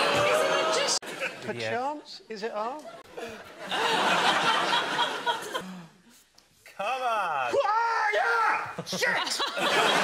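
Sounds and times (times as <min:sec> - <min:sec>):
audience laughter: 0:02.9 - 0:05.6, 0:08.8 - 0:10.0
man shouting: 0:07.4 - 0:09.3.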